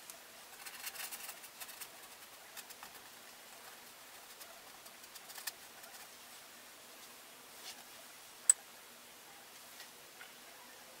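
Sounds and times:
quiet steady hiss: 0.0 - 11.0.

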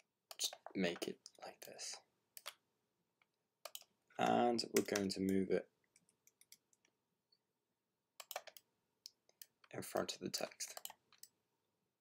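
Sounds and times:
mouse and keyboard clicks: 3.6 - 3.9, 8.2 - 9.6.

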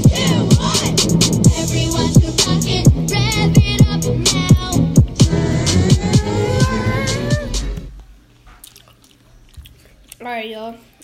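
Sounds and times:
steady low hum: 0.0 - 8.4.

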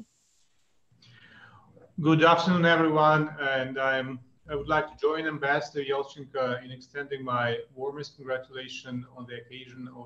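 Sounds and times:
man speaking over video call: 1.6 - 10.0.

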